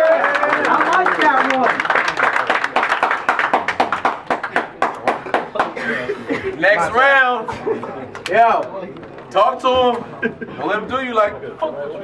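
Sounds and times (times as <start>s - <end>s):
people clapping: 0.0s - 6.1s.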